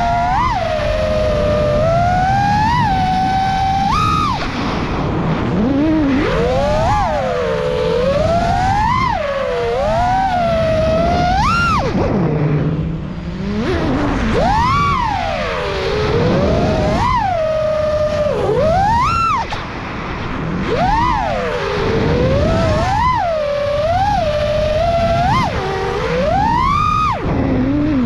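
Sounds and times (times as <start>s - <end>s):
drone motors whining: 0.0s - 28.0s.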